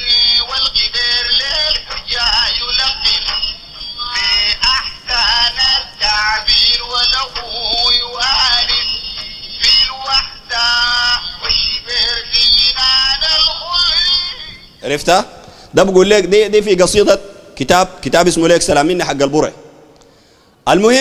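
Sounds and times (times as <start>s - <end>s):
tinny sung qasida over loudspeaker: 0.0s - 19.8s.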